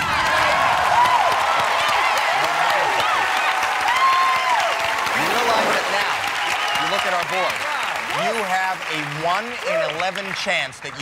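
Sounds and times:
high excited shouts: 0:00.0 - 0:08.4
audience applauding and cheering: 0:00.0 - 0:11.0
man talking: 0:05.2 - 0:06.2, 0:06.8 - 0:11.0.

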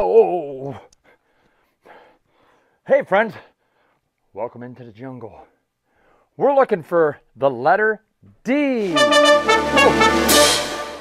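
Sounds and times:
man saying hey: 0:09.7 - 0:10.4.

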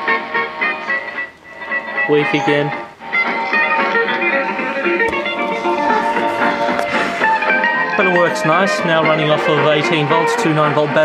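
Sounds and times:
music from small radio speaker: 0:00.0 - 0:11.0.

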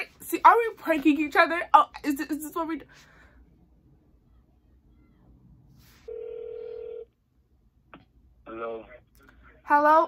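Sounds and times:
phone ringing tone: 0:06.1 - 0:07.1.

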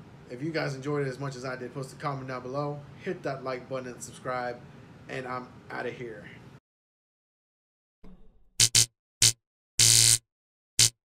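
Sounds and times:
electric buzzing zaps: 0:08.6 - 0:10.2, 0:10.8 - 0:11.0.

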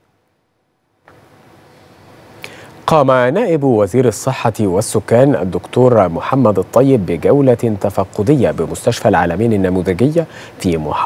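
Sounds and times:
studio room hiss: 0:00.0 - 0:11.0
man speaking: 0:02.8 - 0:11.0.

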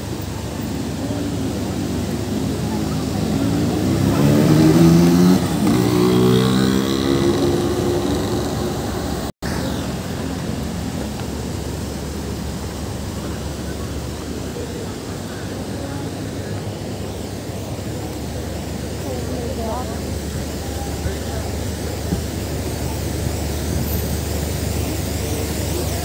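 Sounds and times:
city street traffic: 0:00.0 - 0:26.0
vehicle engine accelerating past: 0:02.3 - 0:09.9.

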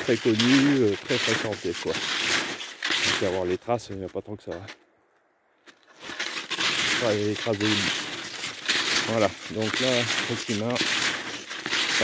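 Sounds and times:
snowshoe steps crunching in snow: 0:00.0 - 0:04.7, 0:05.6 - 0:12.0.

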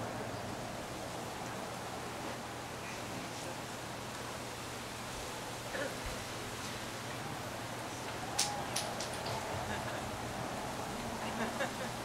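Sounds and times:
outdoor ambient hiss: 0:00.0 - 0:12.0.

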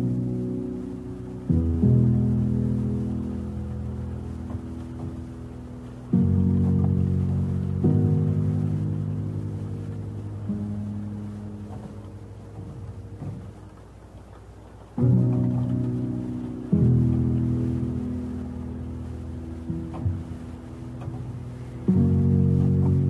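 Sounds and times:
music of low sustained chords: 0:00.0 - 0:23.0.

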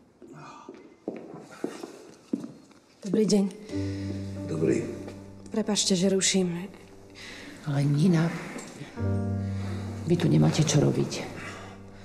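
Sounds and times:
footsteps: 0:00.1 - 0:03.4.

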